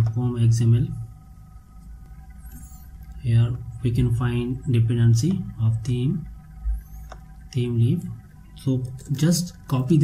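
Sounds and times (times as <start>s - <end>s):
electrical hum and hiss: 0.0s - 10.0s.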